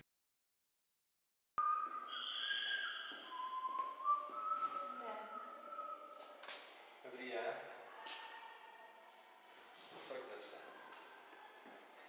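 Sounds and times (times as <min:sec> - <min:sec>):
high whistled tones: 0:01.6 - 0:06.6.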